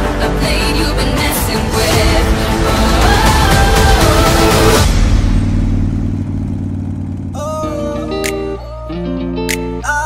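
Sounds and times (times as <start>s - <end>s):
motorcycle engine running: 2.0s - 8.8s.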